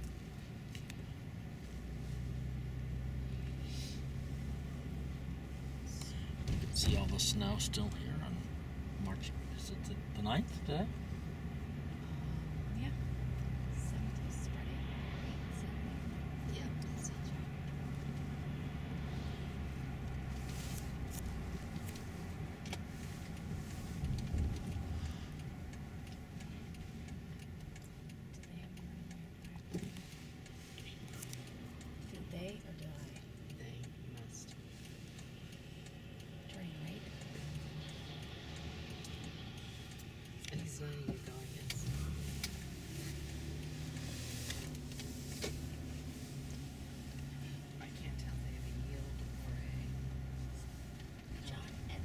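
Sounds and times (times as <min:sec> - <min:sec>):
engine and road rumble: 0:00.0 - 0:52.0
light clicks and rattles: 0:00.0 - 0:52.0.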